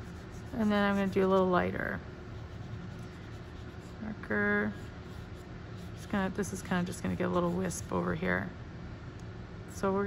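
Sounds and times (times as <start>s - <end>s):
marker tip rubbing on paper: 0.0s - 1.4s, 2.4s - 4.0s.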